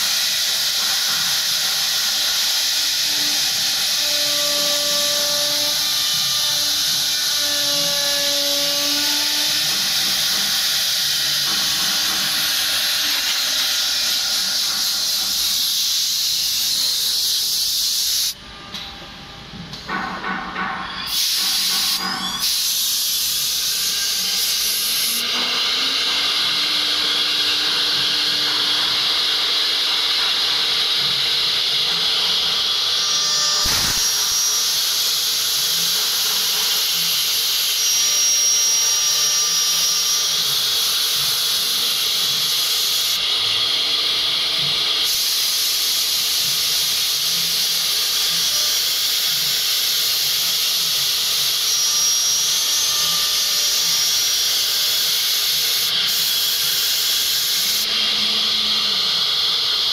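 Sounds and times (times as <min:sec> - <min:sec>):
router spindle cutting wood: 0:00.0 - 0:16.6, 0:22.5 - 0:59.9.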